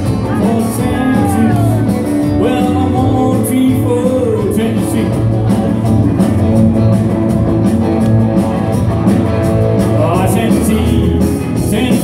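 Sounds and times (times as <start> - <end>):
bass guitar: 0.0 - 12.0
drum kit: 0.0 - 12.0
electric guitars: 0.0 - 12.0.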